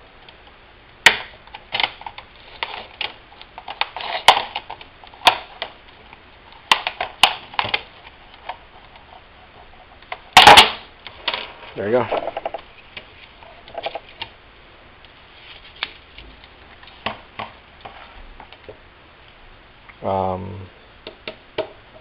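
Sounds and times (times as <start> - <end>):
sharp irregular clicks and cracks: 0.2 - 9.2.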